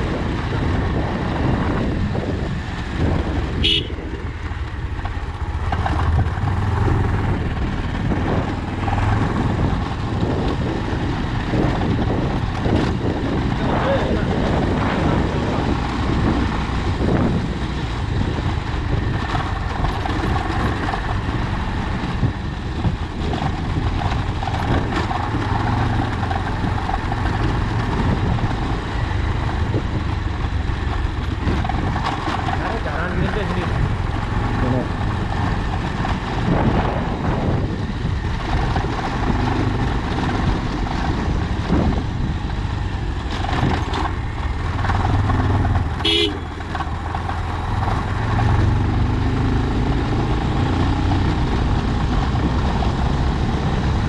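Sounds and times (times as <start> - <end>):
motorcycle engine running: 0.0 - 54.0
tyres on gravel road: 0.0 - 54.0.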